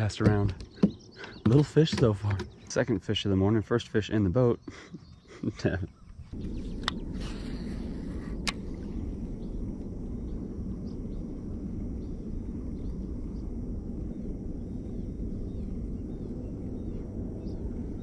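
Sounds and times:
low rumble: 6.1s - 18.0s.

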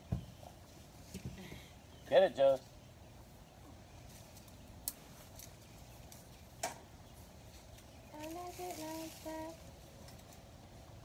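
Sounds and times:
faint background noise: 0.0s - 11.0s.

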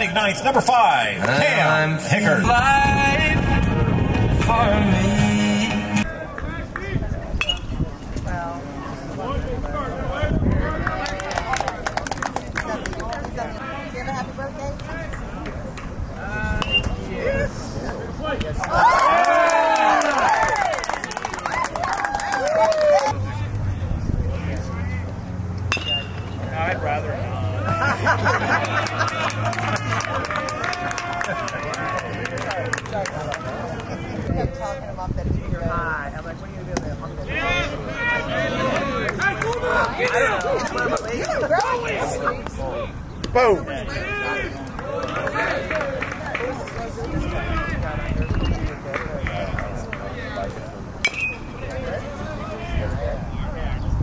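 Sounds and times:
people talking and calling out: 0.0s - 54.0s
crowd cheering: 10.1s - 13.8s, 18.3s - 23.5s, 25.7s - 34.3s, 37.2s - 53.0s
voices shouting: 37.1s - 46.1s.

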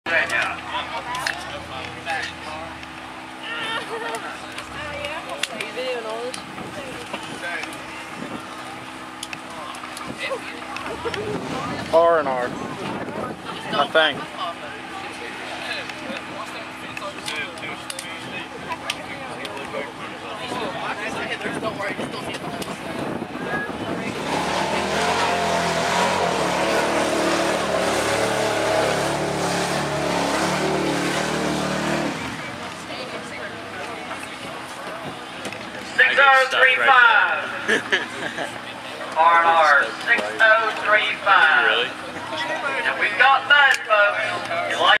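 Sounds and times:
people talking: 0.1s - 25.5s, 31.9s - 45.0s
truck engine running: 0.1s - 45.0s
truck engine revving: 23.7s - 34.8s.

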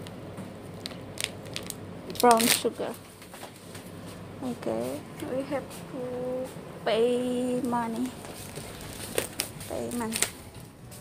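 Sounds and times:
store room tone hum: 0.0s - 11.0s
packaging crackling: 0.8s - 2.8s, 8.0s - 10.5s.

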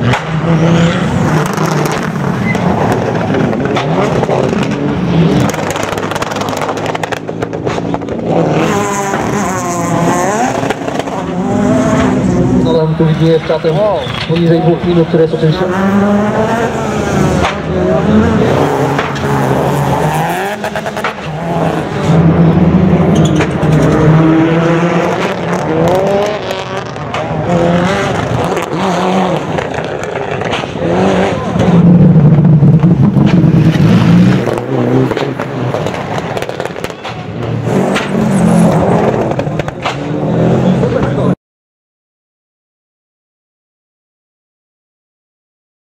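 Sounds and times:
rally car engines revving: 0.0s - 41.4s.

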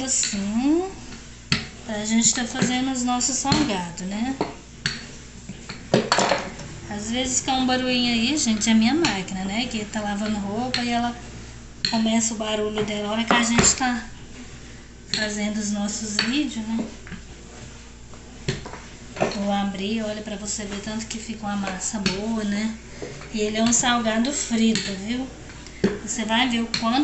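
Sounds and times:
washing machine humming: 0.0s - 27.0s.

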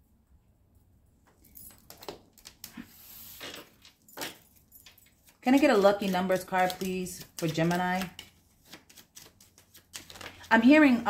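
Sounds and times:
cards being shuffled: 1.8s - 11.0s.

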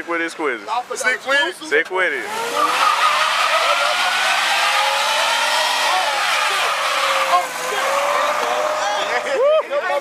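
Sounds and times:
car engine at high revs: 2.1s - 9.4s
tyre squealing: 2.4s - 9.6s.

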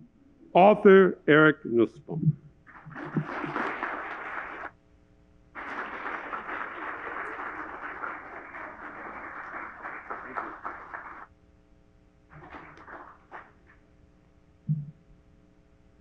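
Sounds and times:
audience applauding: 2.7s - 4.8s, 5.6s - 11.3s, 12.3s - 13.8s.

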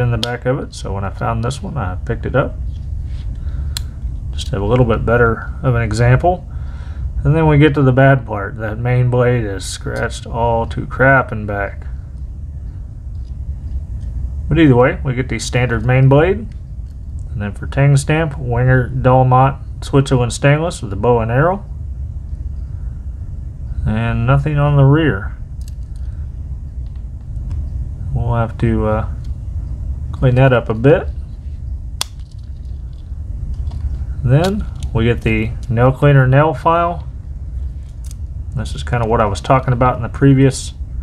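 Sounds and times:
low room rumble: 0.0s - 41.0s
low steady hum: 0.0s - 41.0s.

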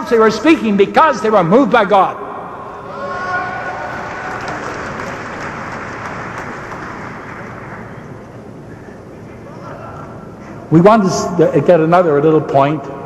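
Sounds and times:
audience applauding: 3.8s - 8.3s.

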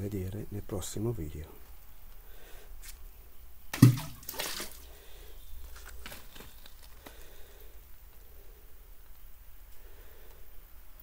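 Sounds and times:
stream trickling over rock: 3.8s - 5.0s.

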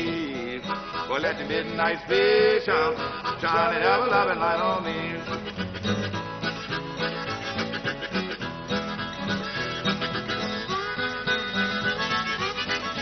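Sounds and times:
blues harmonica: 0.0s - 13.0s
strummed acoustic guitar: 0.0s - 13.0s.

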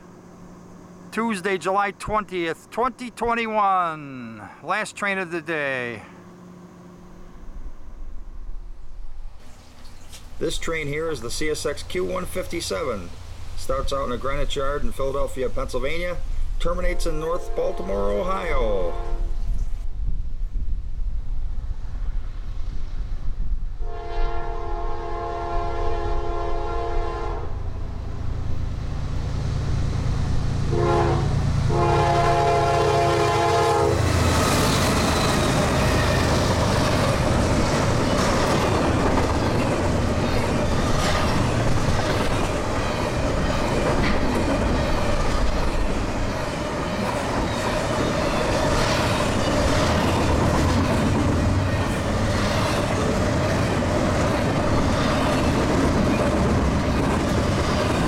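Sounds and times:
train air horn blasts: 16.9s - 19.6s, 23.8s - 27.6s, 30.7s - 34.1s
train wheels rolling and clattering: 34.0s - 58.0s.

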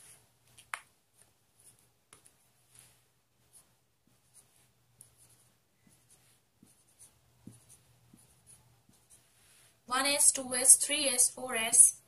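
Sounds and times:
marker scratching on whiteboard: 0.0s - 10.2s
faint low hum: 0.0s - 12.0s.

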